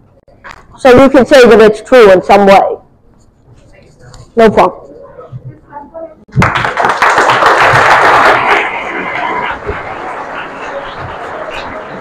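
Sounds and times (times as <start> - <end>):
large audience applauding: 6.3 - 12.0.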